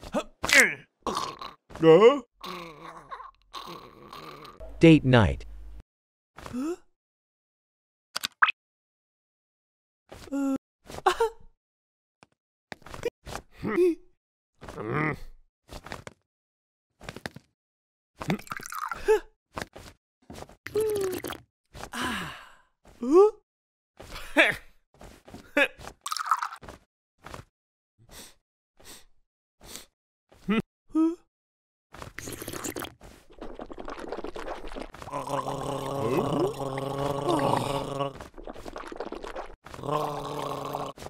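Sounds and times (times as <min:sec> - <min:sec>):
breathy sigh: 0:21.9 - 0:23.2, 0:35.2 - 0:38.1
woman humming mm: 0:35.1 - 0:38.2.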